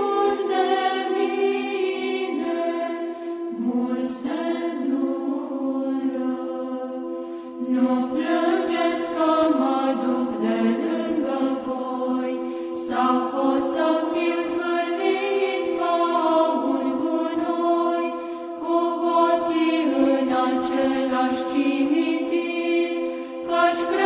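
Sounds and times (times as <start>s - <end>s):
choir singing a slow chant: 0.0s - 24.0s.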